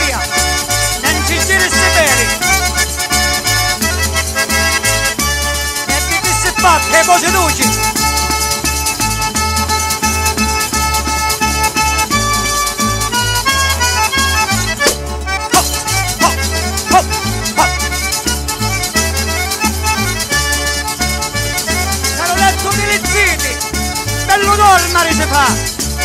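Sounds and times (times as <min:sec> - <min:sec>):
accordion melody: 0:00.0 - 0:26.0
pulsing bass: 0:00.0 - 0:26.0.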